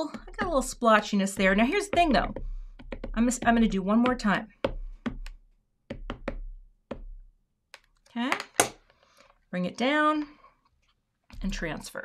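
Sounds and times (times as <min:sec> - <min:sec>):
ink pad dabbing on stamp: 0:00.1 - 0:07.1.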